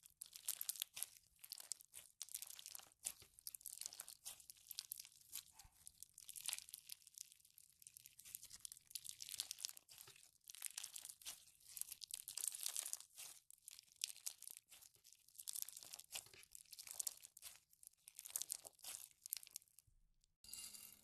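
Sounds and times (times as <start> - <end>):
slime crackling and popping: 0.0 - 19.9.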